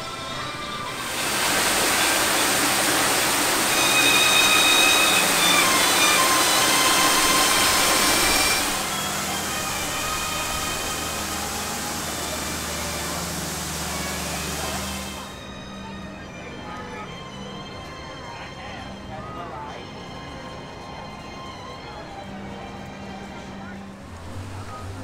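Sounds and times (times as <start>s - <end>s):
faint music: 0.0s - 25.0s
steady rushing noise: 0.9s - 15.3s.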